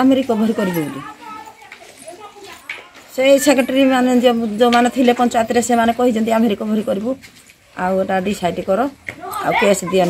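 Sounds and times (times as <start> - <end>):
close speech: 0.0 - 7.2, 7.8 - 10.0
faint background voices: 0.0 - 10.0.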